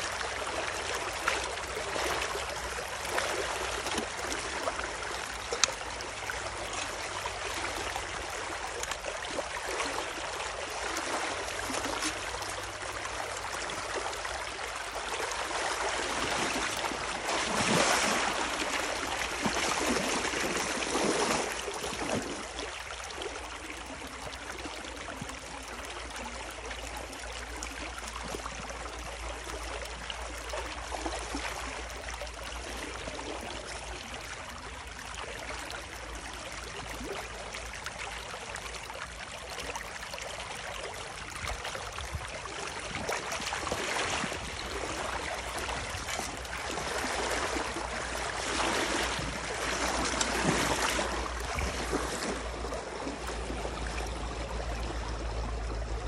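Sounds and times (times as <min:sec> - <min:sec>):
water rushing through a gap: 0:00.0 - 0:25.8, 0:39.9 - 0:56.0
water splashing around a leg: 0:00.0 - 0:56.0.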